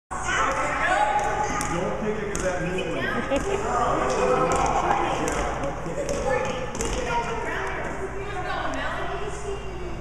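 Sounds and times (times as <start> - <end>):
indistinct voices chattering: 0.1 - 10.0.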